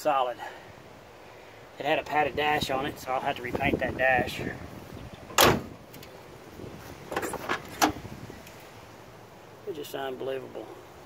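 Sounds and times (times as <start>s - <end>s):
car door clunking: 5.3s - 6.1s, 7.1s - 8.1s.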